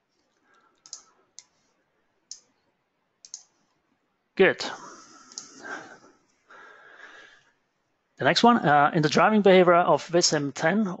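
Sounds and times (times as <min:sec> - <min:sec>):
computer mouse clicks: 0:00.1 - 0:01.7, 0:02.3 - 0:03.8, 0:05.3 - 0:05.6.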